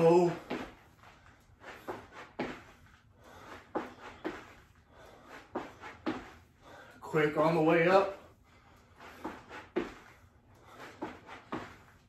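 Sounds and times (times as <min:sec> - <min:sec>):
feet thudding on rubber mat: 0:00.0 - 0:06.5, 0:08.9 - 0:12.0.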